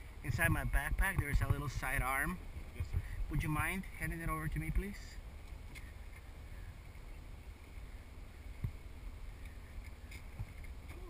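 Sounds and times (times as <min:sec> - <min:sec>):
engine and tyre rumble: 0:00.0 - 0:11.0.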